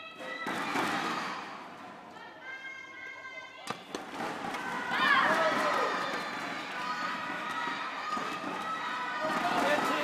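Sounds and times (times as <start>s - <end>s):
loud voices shouting: 4.5s - 10.0s.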